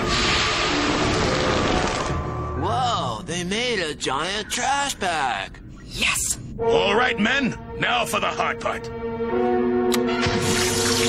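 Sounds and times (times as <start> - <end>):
background music: 2.1 - 11.0.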